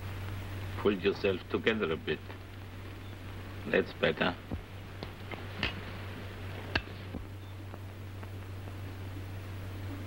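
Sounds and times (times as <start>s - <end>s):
film soundtrack hum: 0.0s - 10.0s.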